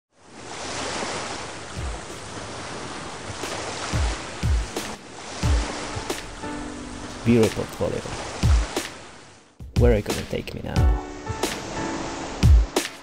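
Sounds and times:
ocean surf washing: 0.1 - 13.0.

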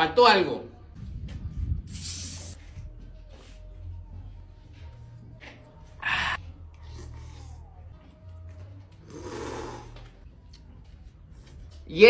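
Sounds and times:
man slurping noodles: 9.1 - 10.0.

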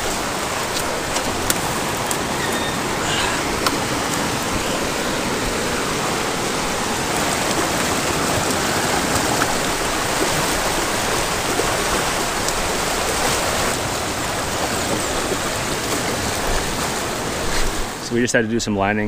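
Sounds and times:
river rapids rushing: 0.0 - 18.3.

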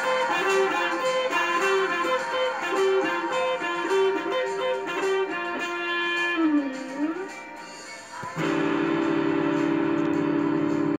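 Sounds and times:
electric guitar lead: 0.0 - 11.0
held guitar chord ringing: 8.3 - 11.0.

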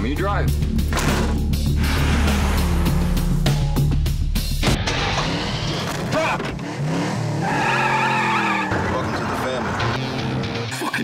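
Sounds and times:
music: 0.0 - 6.6, 9.0 - 11.0
car engine revving: 4.6 - 10.8
tyres squealing: 7.4 - 10.0.

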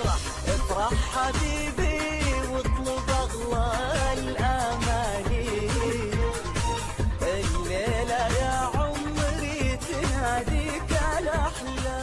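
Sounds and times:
pop backing band with beat: 0.0 - 12.0.

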